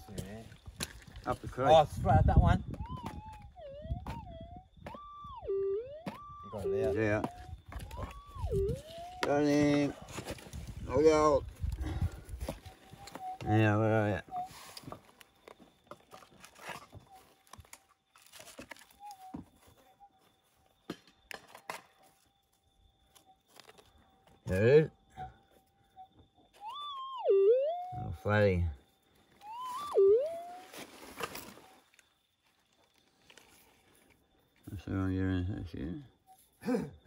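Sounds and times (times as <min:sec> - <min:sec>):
metal detector tone wavering: 0:02.2 - 0:09.9, 0:12.8 - 0:14.8, 0:26.6 - 0:28.4, 0:29.4 - 0:30.8.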